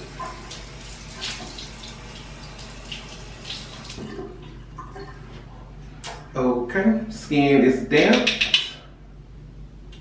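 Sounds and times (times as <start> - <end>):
faucet running into basin: 0.0 - 5.1.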